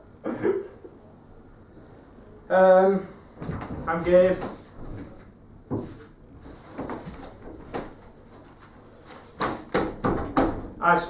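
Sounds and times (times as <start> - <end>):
paper rustling: 3.8 - 9.7.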